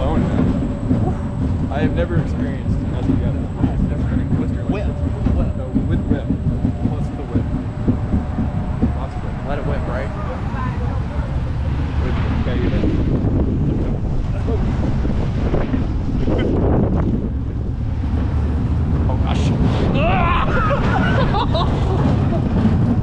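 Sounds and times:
coaster car rumbling on track: 0:00.0 - 0:23.0
wind buffeting microphone: 0:00.0 - 0:23.0
riders laughing and exclaiming: 0:19.9 - 0:22.7.

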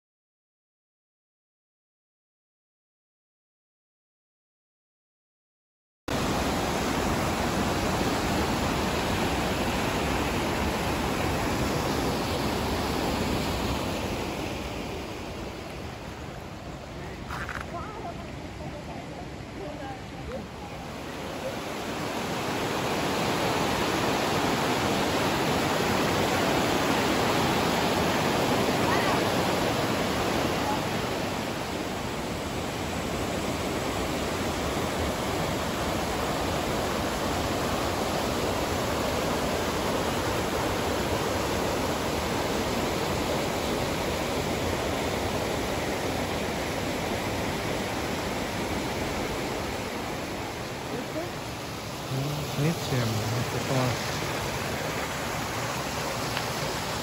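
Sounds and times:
river rushing over boulders: 0:06.1 - 0:57.0.

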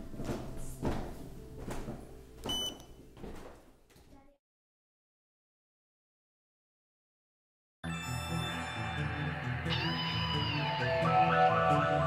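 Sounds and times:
footsteps on wooden stairs: 0:00.0 - 0:04.2.

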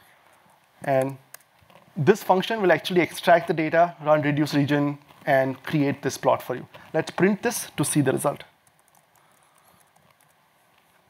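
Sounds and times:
laptop keystrokes: 0:08.6 - 0:10.4.

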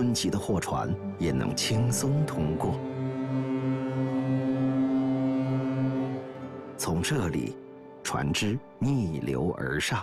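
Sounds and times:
ship horn blast: 0:01.0 - 0:08.8.

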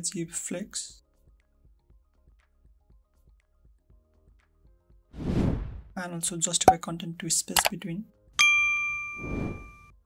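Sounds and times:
bright bell ding: 0:08.4 - 0:09.8.

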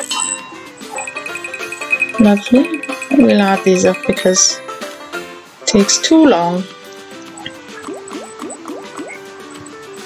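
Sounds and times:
chiming sound effects: 0:00.0 - 0:04.6
electronic slot game music: 0:00.0 - 0:05.1, 0:07.2 - 0:10.0
rapid high repeating ping: 0:00.9 - 0:04.6.

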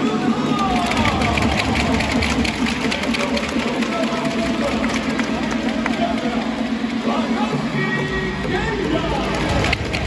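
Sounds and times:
crowd low rumble: 0:00.0 - 0:10.0
murmur of voices: 0:00.0 - 0:10.0.

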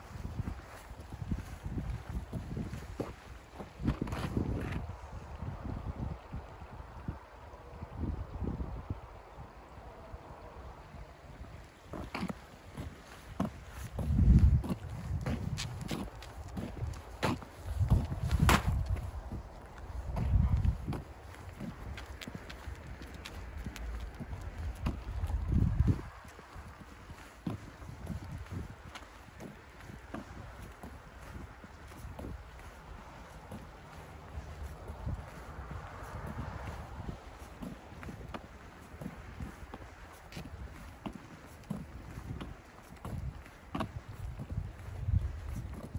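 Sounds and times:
footsteps crunching in snow: 0:00.0 - 0:04.9, 0:11.6 - 0:45.9
wind gusting on microphone: 0:00.0 - 0:45.9.

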